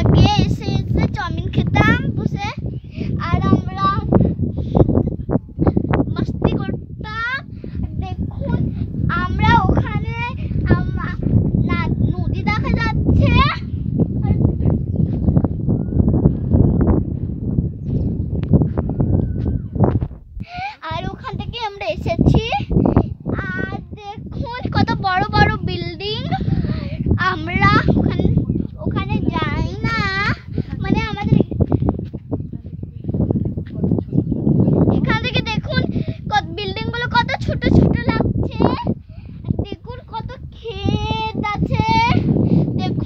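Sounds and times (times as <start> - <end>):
child talking: 0.0 - 14.8, 20.4 - 31.9, 32.5 - 43.0
wind rumble on microphone: 0.0 - 43.0
child singing: 39.5 - 43.0.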